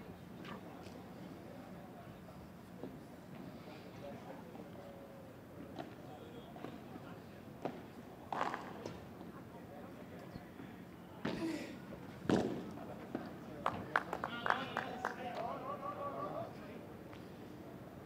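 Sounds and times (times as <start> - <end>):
voices: 0.0 - 17.9.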